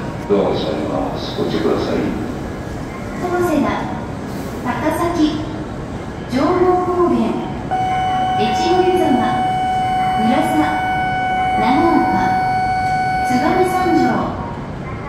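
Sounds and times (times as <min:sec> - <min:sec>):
steady electronic tone: 0:07.7 - 0:14.3.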